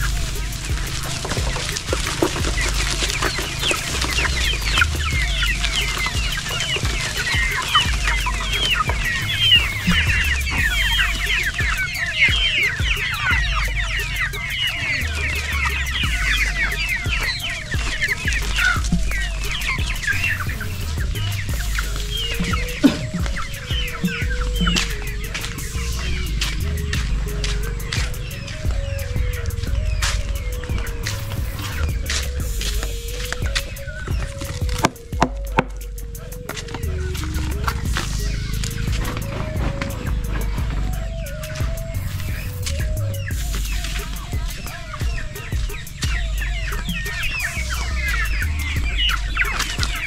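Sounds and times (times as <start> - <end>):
chickens peeping and clucking: 0.0 - 50.0.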